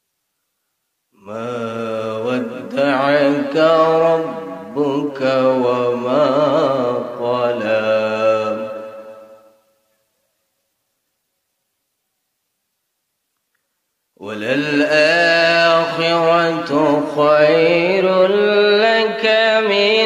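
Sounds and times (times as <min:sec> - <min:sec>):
man chanting melodically: 0:01.2 - 0:09.2, 0:14.2 - 0:20.0.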